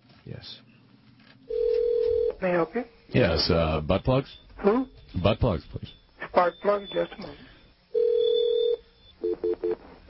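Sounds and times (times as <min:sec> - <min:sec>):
steady telephone line tone: 0:01.5 - 0:02.6, 0:04.4 - 0:09.9
two-note telephone beeps: 0:06.4 - 0:07.2, 0:08.0 - 0:09.8.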